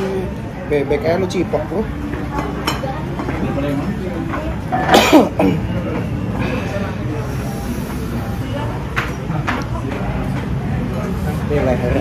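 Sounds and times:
dining room chatter: 0.0 - 12.0.

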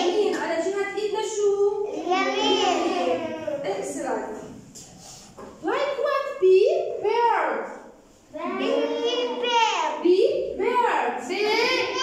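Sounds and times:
children's voices: 0.0 - 0.6, 1.8 - 4.0, 8.3 - 10.6, 11.2 - 12.0.

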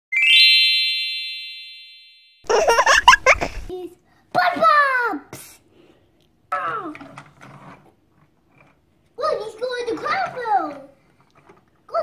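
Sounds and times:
rising bell-like chime: 0.1 - 2.5.

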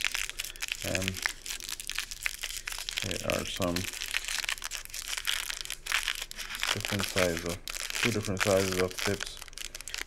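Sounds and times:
plastic pouch crinkling: 0.0 - 10.0.

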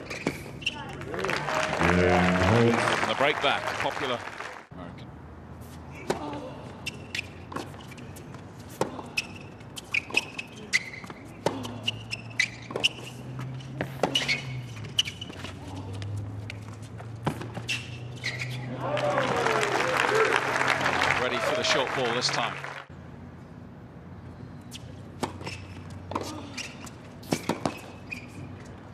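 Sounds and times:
shoe squeaks on court: 0.0 - 1.0, 9.0 - 15.6, 16.5 - 18.7, 24.7 - 28.8
crowd cheering and applauding: 1.1 - 4.7, 18.7 - 22.9
tennis ball bouncing: 6.9 - 18.4, 25.0 - 28.7
racket striking tennis ball: 27.2 - 28.0.

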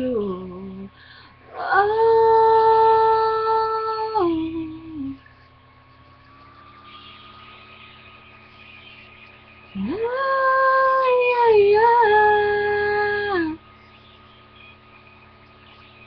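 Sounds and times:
woman singing long note: 0.0 - 0.9, 1.5 - 5.2, 9.8 - 13.6
faint steady tones: 0.0 - 16.0.

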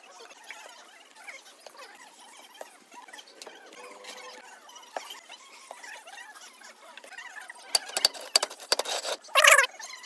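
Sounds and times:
short high squeaks: 9.0 - 9.7.

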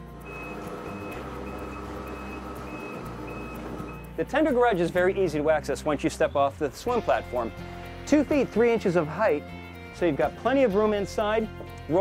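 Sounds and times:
garage door motor humming: 0.1 - 4.1.

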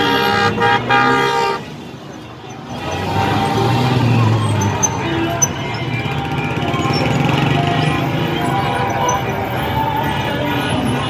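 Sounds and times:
cars and motorbikes passing: 0.0 - 11.0
crowd voices: 0.0 - 11.0
music: 0.0 - 11.0.

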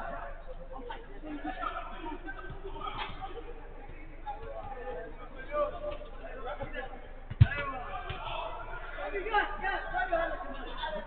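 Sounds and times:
football being kicked: 6.6 - 8.3.

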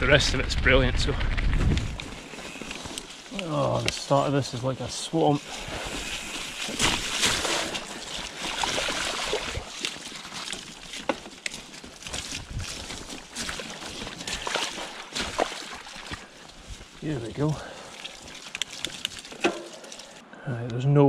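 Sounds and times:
bike tyres splashing through mud: 1.9 - 20.2.

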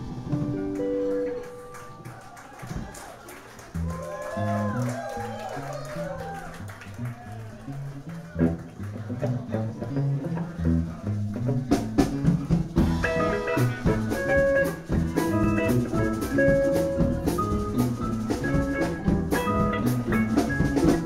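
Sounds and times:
picked guitar notes: 0.0 - 2.3, 3.8 - 21.0
live rock band playing: 0.0 - 2.8, 3.6 - 21.0
drum kit: 0.0 - 2.9, 10.6 - 21.0.

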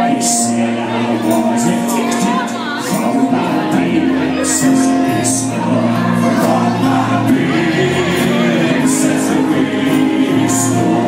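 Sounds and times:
drums: 0.0 - 11.0
electric guitar: 0.0 - 11.0
person singing: 0.0 - 11.0
rock band playing live: 0.0 - 11.0.

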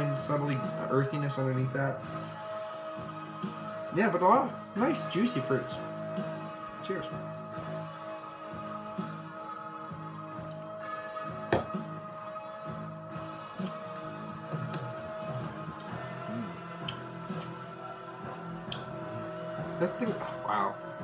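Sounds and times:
background music sustained notes: 0.0 - 21.0.

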